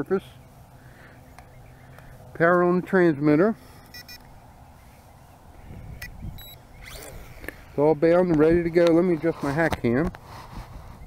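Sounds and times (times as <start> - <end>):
transmitter high beep: 3.9 - 4.2, 6.0 - 6.6
wind rumbling on microphone: 5.3 - 11.0.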